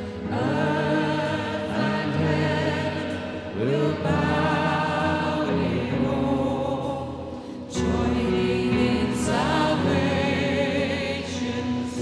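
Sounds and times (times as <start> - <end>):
woman singing worship song: 0.0 - 12.0.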